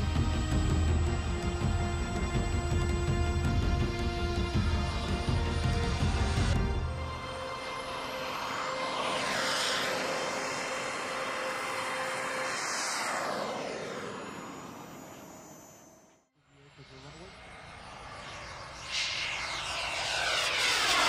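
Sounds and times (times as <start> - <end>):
faint jet: 0.0 - 21.0
model jet turbine roar: 0.0 - 21.0.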